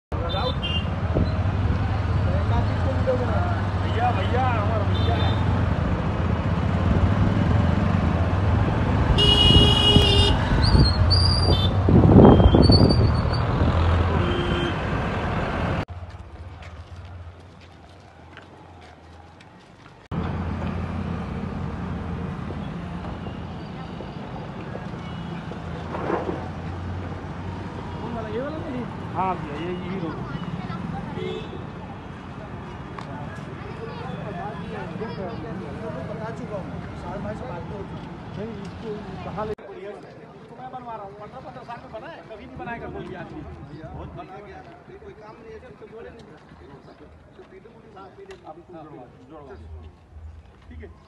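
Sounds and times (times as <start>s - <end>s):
road traffic rumble: 0.1s - 51.0s
vehicle engine hum: 4.6s - 28.0s
long loud horn blast: 9.2s - 10.4s, 14.1s - 14.9s
short horn beeps: 11.5s - 13.5s
voices: 21.3s - 51.0s.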